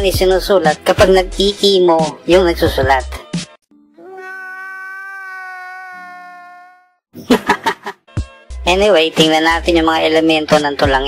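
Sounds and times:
man wailing: 0:04.0 - 0:06.9.

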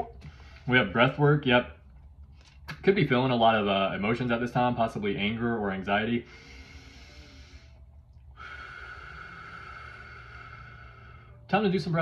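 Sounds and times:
man breathing deeply: 0:00.1 - 0:00.7, 0:06.2 - 0:11.5.

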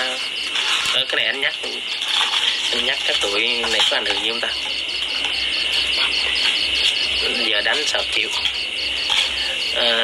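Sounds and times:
insects chirping: 0:00.0 - 0:10.0.

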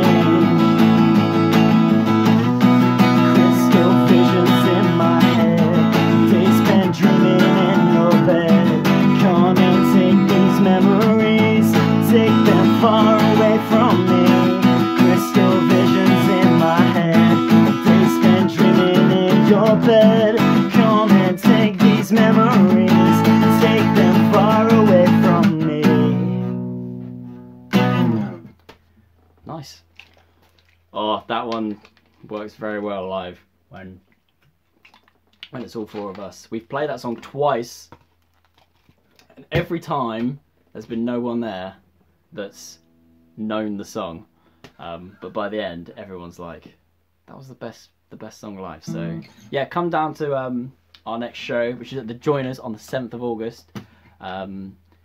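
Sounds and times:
man singing: 0:00.0 - 0:01.2, 0:02.4 - 0:26.4
acoustic guitar strumming: 0:00.0 - 0:28.6, 0:42.8 - 0:43.4, 0:48.9 - 0:49.6.

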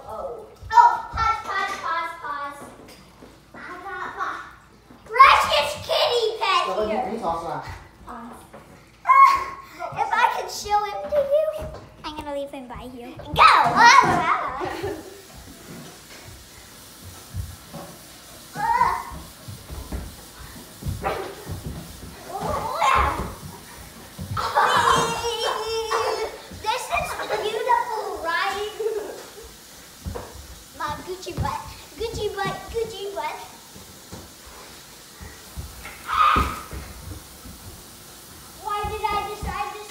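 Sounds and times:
children shrieking and laughing: 0:09.0 - 0:10.3, 0:13.4 - 0:15.3, 0:22.2 - 0:23.5, 0:24.2 - 0:29.6, 0:35.8 - 0:36.8.

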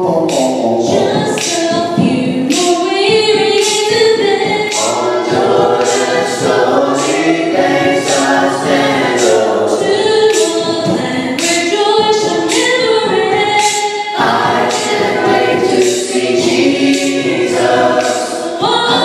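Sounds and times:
choir singing a hymn: 0:02.4 - 0:19.0.

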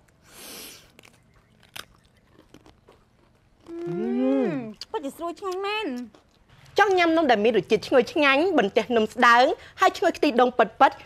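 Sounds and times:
biscuit crunching when chewed: 0:00.0 - 0:06.8.

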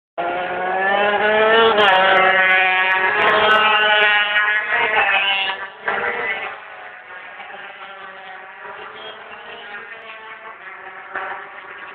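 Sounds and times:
racing motorcycles at full throttle: 0:00.2 - 0:11.9.

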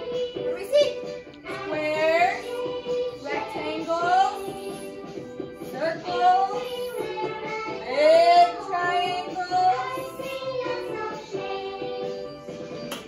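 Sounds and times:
children singing over backing track: 0:00.0 - 0:13.0.

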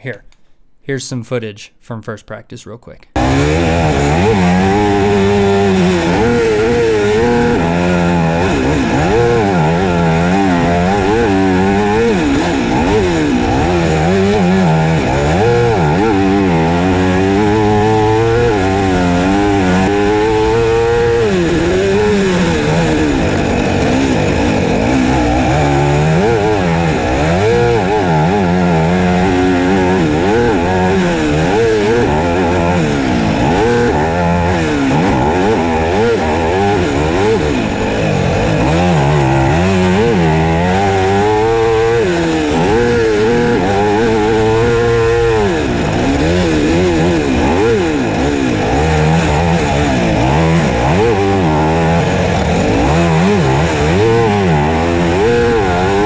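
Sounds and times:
motocross engine revving: 0:03.1 - 0:56.0.

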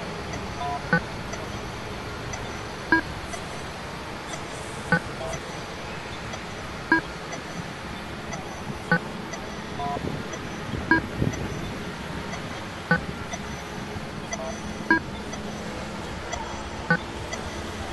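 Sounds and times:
city street traffic: 0:00.0 - 0:17.9.

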